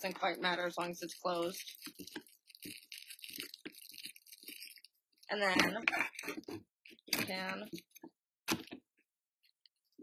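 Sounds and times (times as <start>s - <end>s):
cellophane crinkling: 0.6s - 5.0s.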